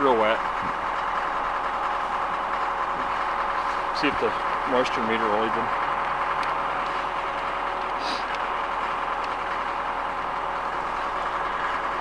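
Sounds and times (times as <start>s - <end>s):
mechanical drone: 0.0s - 12.0s.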